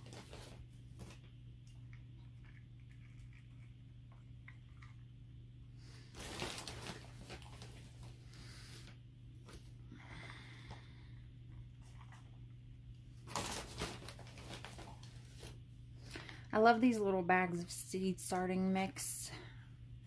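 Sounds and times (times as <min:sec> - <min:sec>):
steady low hum: 0:00.0 - 0:20.0
potting mix rustling and pattering: 0:05.8 - 0:08.5, 0:11.5 - 0:16.4.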